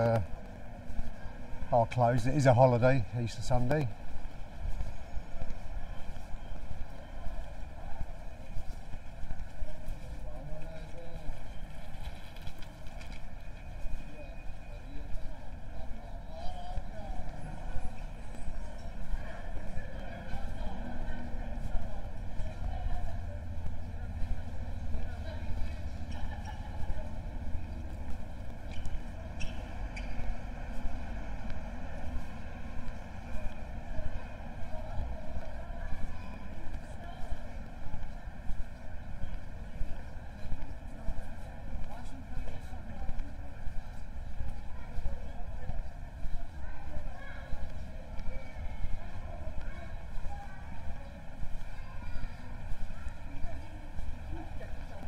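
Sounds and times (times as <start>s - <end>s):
faint voices of passers-by: 0.0s - 55.0s.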